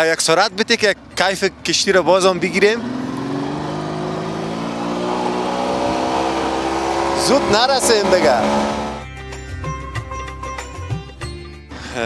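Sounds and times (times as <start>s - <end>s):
motorboat engine speeding up: 2.4s - 9.0s.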